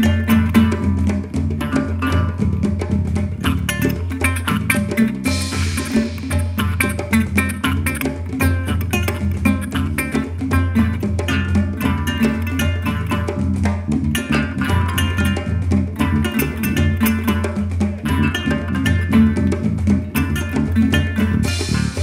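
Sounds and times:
hand drums playing fast rhythm: 0.0s - 22.0s
plucked string melody: 0.0s - 22.0s.

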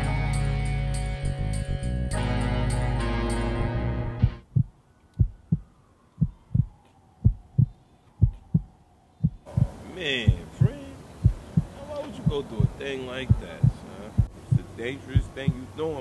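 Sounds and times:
background noise: 2.9s - 16.0s
heartbeat thumps: 4.2s - 15.7s.

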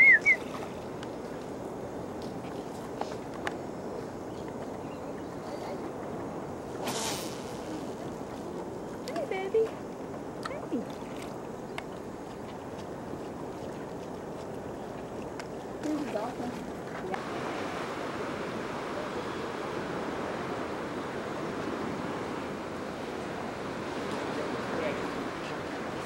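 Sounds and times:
wind on microphone: 0.0s - 26.0s
ocean surf: 15.5s - 26.0s.

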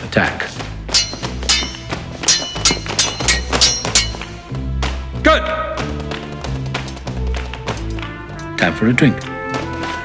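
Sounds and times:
film score music: 0.0s - 10.0s
steel blades clashing: 0.9s - 4.5s.

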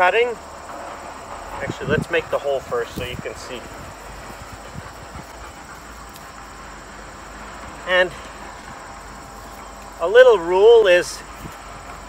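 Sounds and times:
faint insect chirr: 0.0s - 12.0s.

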